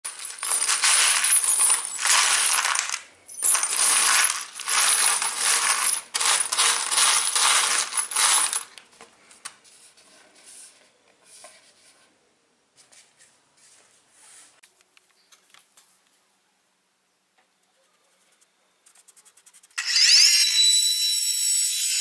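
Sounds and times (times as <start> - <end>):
metal screws jingling clatter: 0.1 - 8.8.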